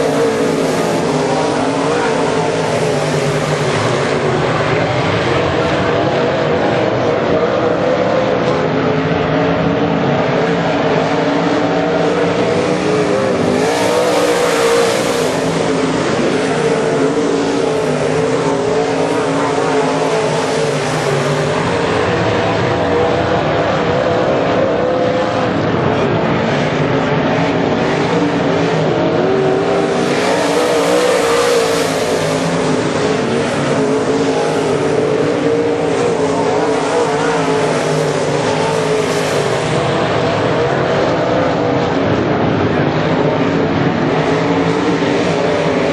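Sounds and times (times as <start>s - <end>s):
race car engines droning: 0.0s - 45.9s.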